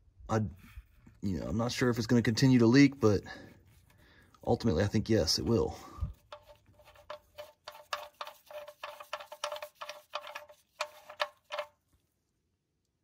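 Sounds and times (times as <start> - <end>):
drain plug threads clicking: 6.1 - 11.8.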